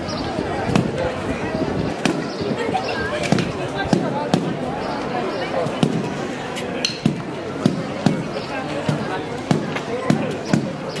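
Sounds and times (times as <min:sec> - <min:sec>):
crowd voices: 0:00.0 - 0:11.0.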